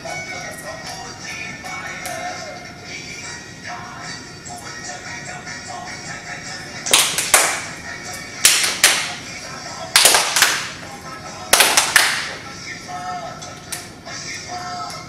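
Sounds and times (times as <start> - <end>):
song with singing: 0.0 - 15.0
hand claps: 6.9 - 7.7, 8.4 - 9.2, 9.9 - 10.8, 11.5 - 12.4.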